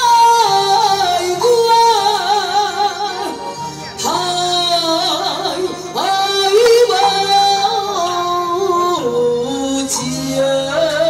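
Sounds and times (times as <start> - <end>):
opera singer singing: 0.0 - 11.0.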